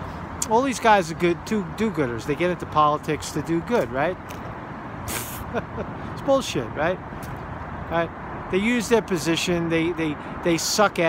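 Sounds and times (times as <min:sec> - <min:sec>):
road traffic rumble: 0:00.0 - 0:11.0
brief sharp hiss: 0:05.0 - 0:05.5.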